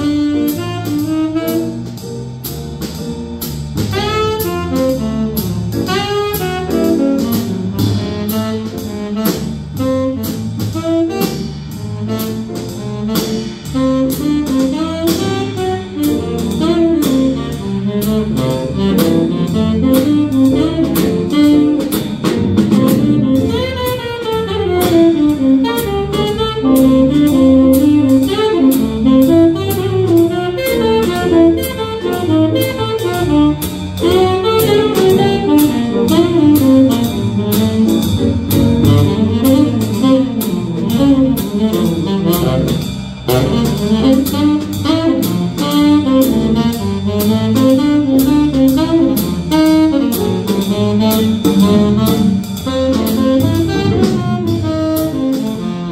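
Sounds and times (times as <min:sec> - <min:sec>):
saxophone melody: 0:00.0 - 0:02.1, 0:03.9 - 0:55.9
jazz combo playing: 0:00.0 - 0:55.9
steady cymbal beat: 0:00.0 - 0:55.9.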